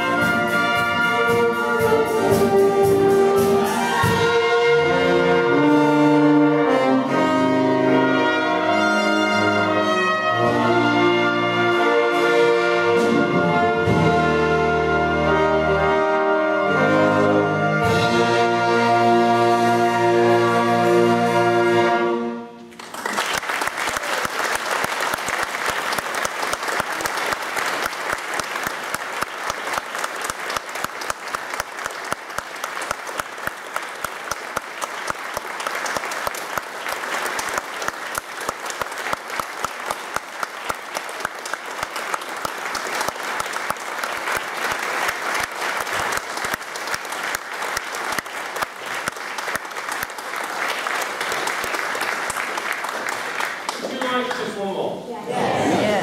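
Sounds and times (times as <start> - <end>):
audience applauding: 22.6 - 56.0.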